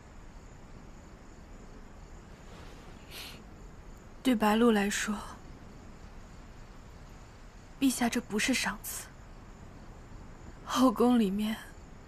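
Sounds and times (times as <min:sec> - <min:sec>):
crickets chirping: 0:00.0 - 0:12.0.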